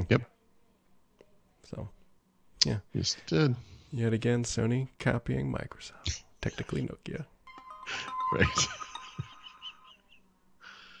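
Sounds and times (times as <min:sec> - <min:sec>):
jingle held tone: 0:07.5 - 0:10.2
short chirp-like notes: 0:07.5 - 0:10.2.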